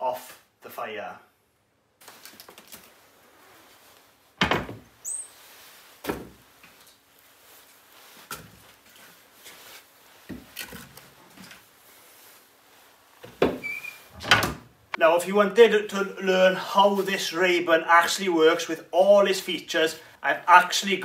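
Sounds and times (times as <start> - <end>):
stove fire door opening and shutting: 13.2 - 14.7.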